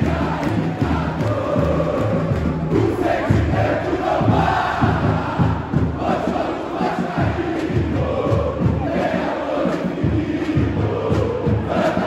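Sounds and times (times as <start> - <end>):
crowd chanting: 0.0 - 12.0.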